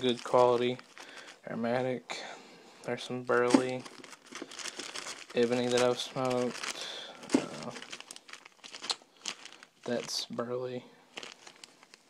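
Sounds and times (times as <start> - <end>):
tobacco bags crinkling: 0.0 - 1.8, 2.9 - 12.0.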